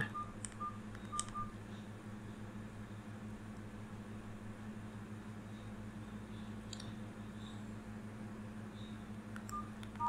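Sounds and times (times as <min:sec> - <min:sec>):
faint electronic beeps: 0:00.0 - 0:03.1, 0:08.7 - 0:10.0
steady low hum: 0:00.0 - 0:10.0.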